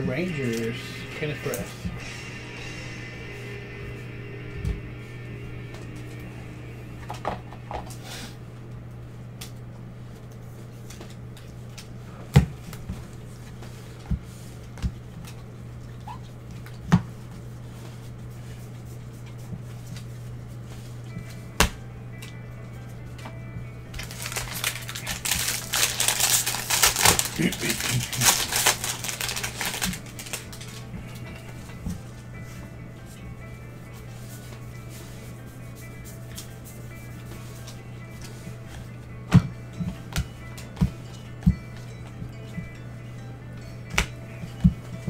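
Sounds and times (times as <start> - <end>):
trading cards rustling and flicking: 0.0 - 2.2, 9.2 - 42.6
low hum: 0.0 - 45.0.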